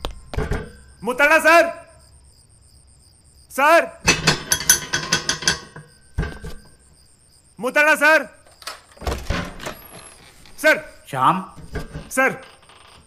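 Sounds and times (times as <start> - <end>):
crickets chirping: 0.0 - 13.0
man speaking: 1.0 - 2.0, 3.5 - 4.0, 7.6 - 8.4, 10.6 - 12.5.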